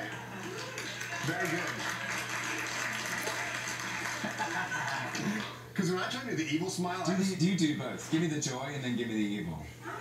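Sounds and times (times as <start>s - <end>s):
studio audience laughing: 0.0s - 5.6s.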